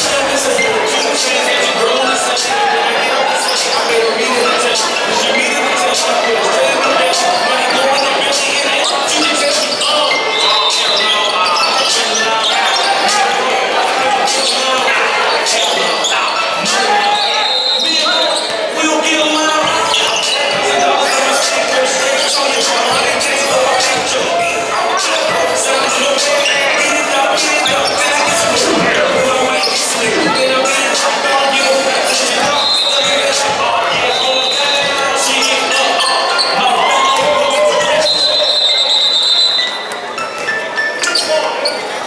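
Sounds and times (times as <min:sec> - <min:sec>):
many people's voices: 0:00.0 - 0:42.0.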